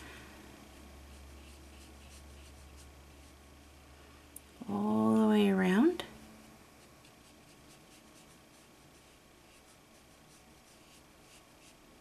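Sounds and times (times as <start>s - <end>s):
brush strokes on paper: 1.0s - 3.5s, 6.8s - 12.0s.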